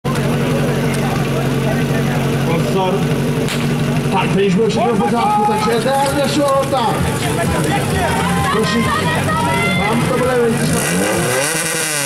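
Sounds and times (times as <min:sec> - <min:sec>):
sharp crack: 0:03.4 - 0:03.8.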